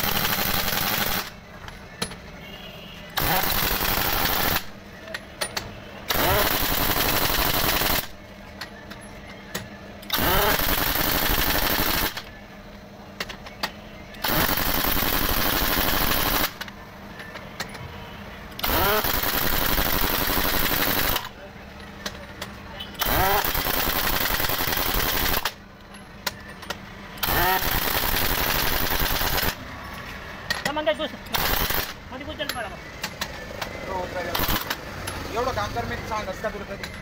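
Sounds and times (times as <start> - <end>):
pneumatic impact wrench hammering: 0.0 - 1.3, 3.1 - 4.7, 5.4 - 8.1, 9.5 - 12.3, 13.2 - 16.7, 18.5 - 21.3, 23.0 - 25.6, 26.3 - 29.6, 30.5 - 32.0, 34.3 - 35.2.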